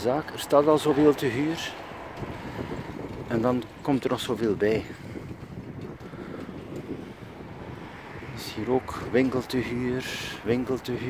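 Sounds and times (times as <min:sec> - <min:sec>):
wind noise on microphone: 0:00.8 - 0:11.0.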